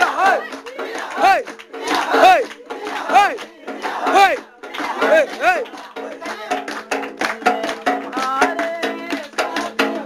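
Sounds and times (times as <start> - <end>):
voices shouting together: 0.0 - 6.6.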